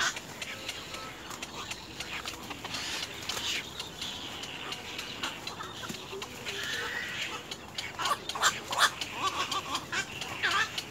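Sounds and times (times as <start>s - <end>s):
herons calling: 0.0s - 10.9s.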